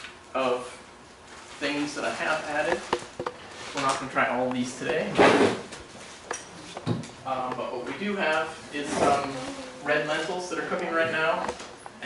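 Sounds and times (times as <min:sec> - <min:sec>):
plastic bags rustling: 0:01.3 - 0:06.2.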